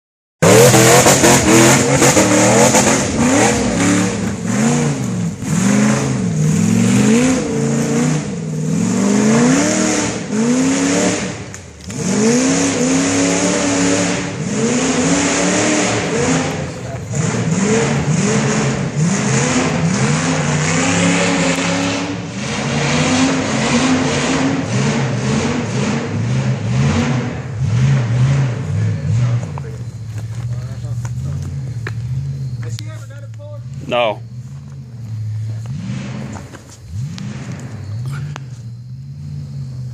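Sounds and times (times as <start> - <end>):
engine revving hard: 0.4 - 29.6, 35.6 - 38.4.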